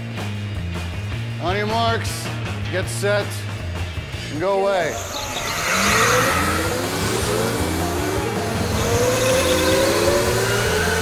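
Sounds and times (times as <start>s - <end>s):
go-karts accelerating: 4.8s - 11.0s.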